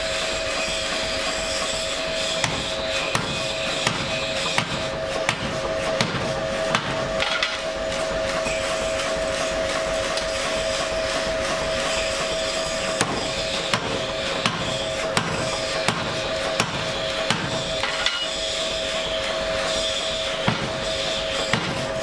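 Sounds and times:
hammer striking metal: 2.4s - 7.6s, 12.9s - 18.4s, 20.4s - 20.8s, 21.4s - 22.0s.

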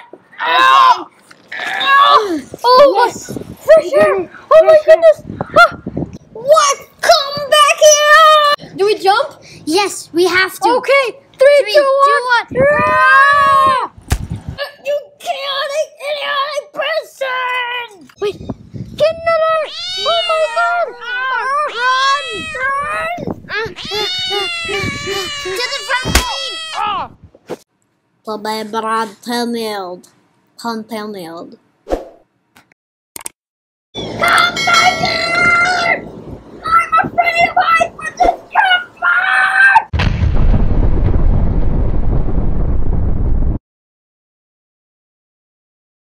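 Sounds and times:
high drawn-out vocal cry: 0.0s - 2.6s, 19.2s - 27.2s, 38.5s - 39.9s
explosion blast: 40.0s - 43.6s
low rumble: 40.0s - 43.6s.

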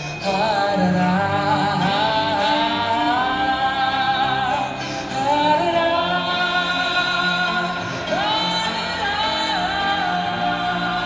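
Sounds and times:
song accompaniment: 0.0s - 11.0s.

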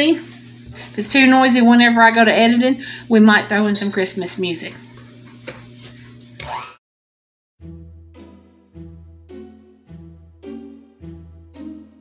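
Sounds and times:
instrumental music with held notes: 7.6s - 12.0s.

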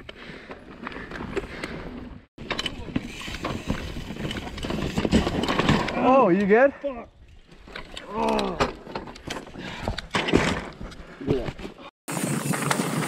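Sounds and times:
bike rattling clicks and knocks: 0.4s - 6.5s.

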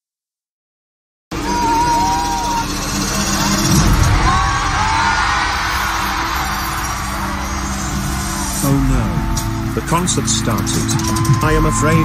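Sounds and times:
large crowd cheering: 1.3s - 12.0s
music: 1.3s - 12.0s
whoops and screams: 1.4s - 2.8s, 3.4s - 9.6s, 10.9s - 12.0s.

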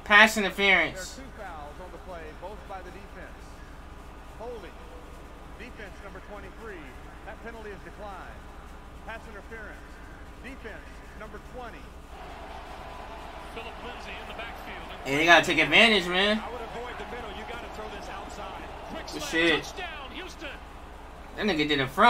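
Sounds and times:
faint broadcast speech: 0.0s - 22.0s
low steady hum: 0.0s - 22.0s.

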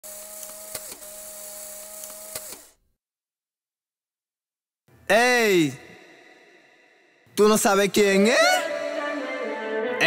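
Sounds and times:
mechanical whir: 0.0s - 2.8s
sharp clicks: 2.0s - 2.8s.

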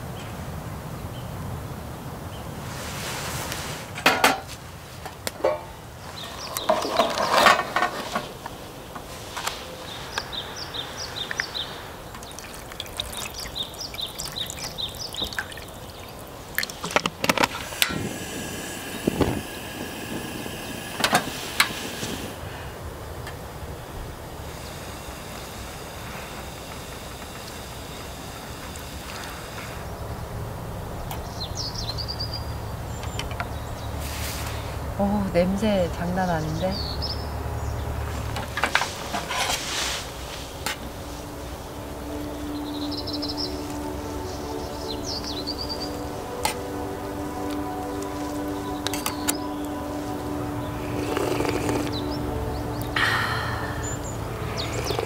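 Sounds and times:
small birds chirping: 5.7s - 22.6s, 23.6s - 55.0s
soup bubbling in a pot: 12.0s - 17.0s.

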